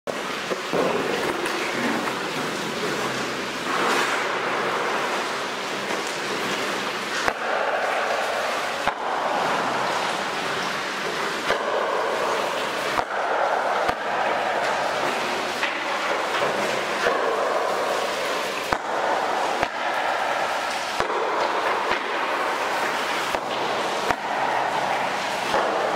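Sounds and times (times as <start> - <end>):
ice skates scraping on ice: 1.0 - 4.3.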